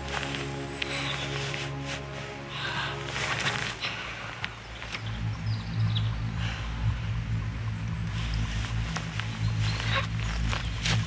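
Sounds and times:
dry leaves rustling and crunching: 0:00.0 - 0:04.0, 0:08.0 - 0:11.0
low steady musical drone: 0:00.0 - 0:11.0.

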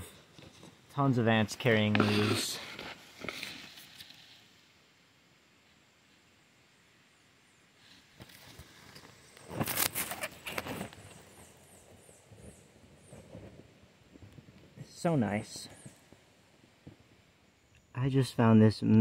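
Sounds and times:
rustling in leaf litter: 0:07.8 - 0:11.5.

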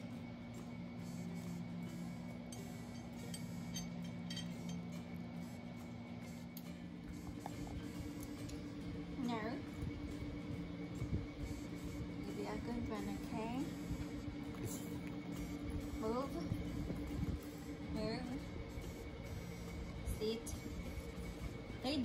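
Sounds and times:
soft background music: 0:00.0 - 0:22.0.

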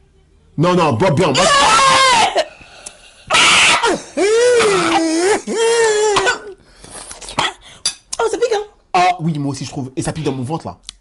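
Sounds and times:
woman wailing in disgust: 0:03.3 - 0:06.6.

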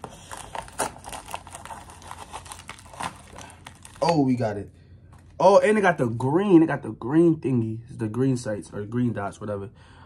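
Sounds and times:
bubble wrap crinkling: 0:00.0 - 0:04.5.

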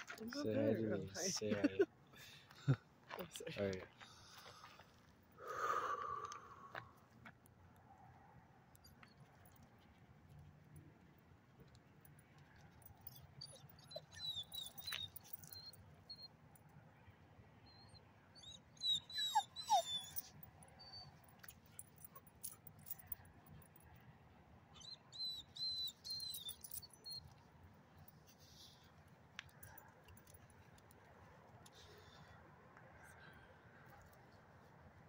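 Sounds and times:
dogs barking and yapping: 0:12.6 - 0:16.3, 0:18.4 - 0:23.8, 0:24.8 - 0:27.4.

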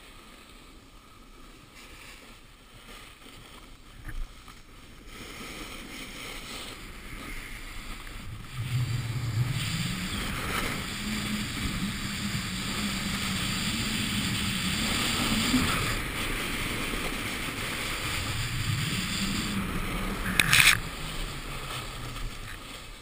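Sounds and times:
snowboard scraping over snow: 0:00.0 - 0:23.0
wind on microphone: 0:03.9 - 0:23.0
low hum: 0:06.0 - 0:23.0.

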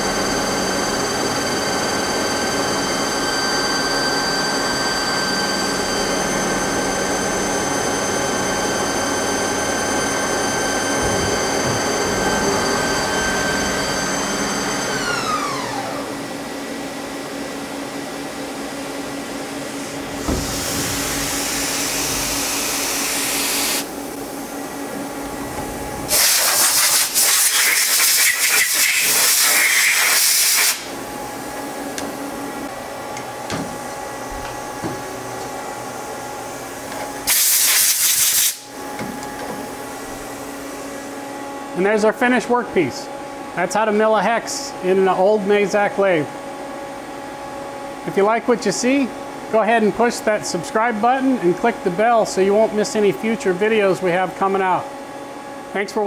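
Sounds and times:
milling spindle whining: 0:00.0 - 0:16.4
hiss: 0:26.1 - 0:30.9, 0:37.3 - 0:38.6
loud hissing rush: 0:26.1 - 0:30.9.

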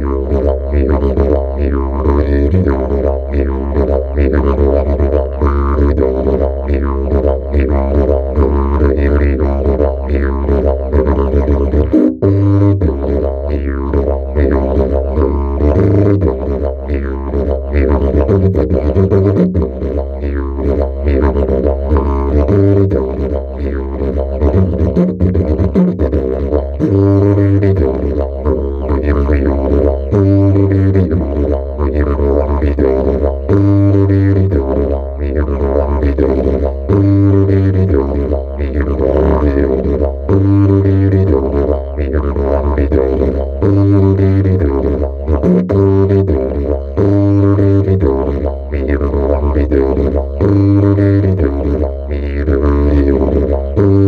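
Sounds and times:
didgeridoo drone: 0:00.0 - 0:54.0.

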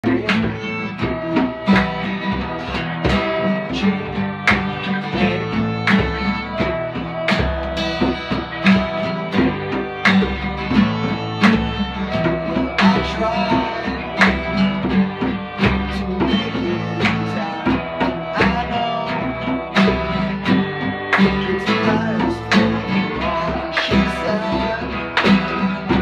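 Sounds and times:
acoustic guitars strumming: 0:00.0 - 0:26.0
fiddle bowed melody: 0:00.0 - 0:26.0.

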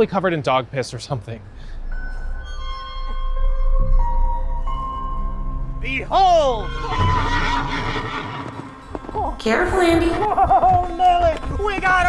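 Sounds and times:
dramatic musical sting: 0:02.0 - 0:08.3
horse whinny: 0:06.6 - 0:08.8.

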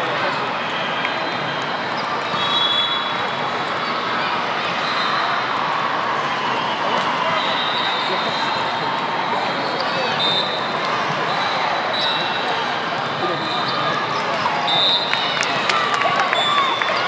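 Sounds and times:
many voices in a hall: 0:00.0 - 0:17.0.

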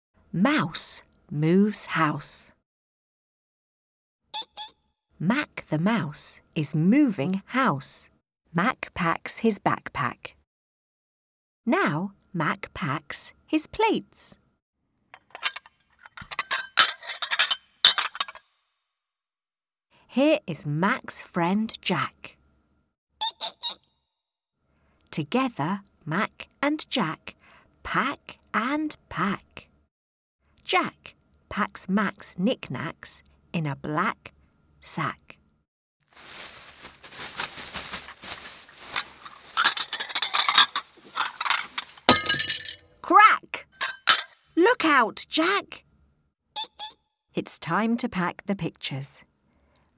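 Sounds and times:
plates clinking: 0:15.2 - 0:18.4, 0:39.6 - 0:42.9, 0:43.8 - 0:44.4
sack rustling: 0:36.1 - 0:42.1.

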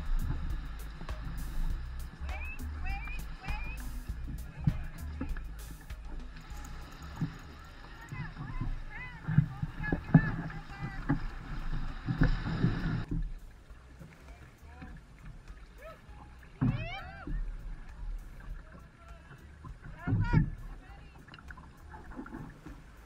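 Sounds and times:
water against moving canoe: 0:00.0 - 0:23.0
water sloshing around legs: 0:00.0 - 0:23.0
wind rumble on microphone: 0:00.0 - 0:23.0.

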